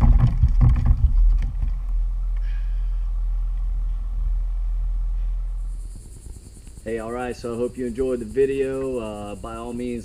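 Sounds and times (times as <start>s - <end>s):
low wind rumble on microphone: 0.0s - 7.6s
pulsing insect trill: 0.0s - 10.0s.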